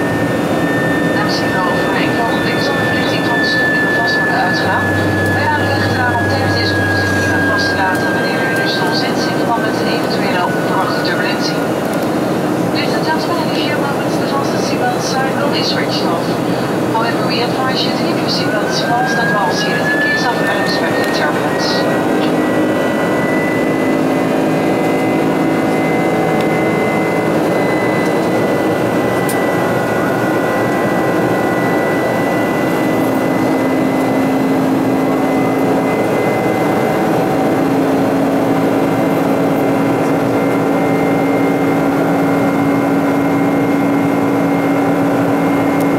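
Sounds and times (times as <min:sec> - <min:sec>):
jet engine rush and drone: 0:00.0 - 0:45.9
low hum: 0:00.0 - 0:45.9
thin high whine: 0:00.0 - 0:45.9.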